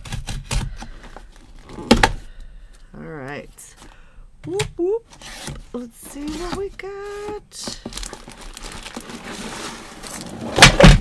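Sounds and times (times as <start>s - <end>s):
cardboard box rustling scrape: 5.1s - 11.0s
loud thumps of contents falling: 10.5s - 11.0s.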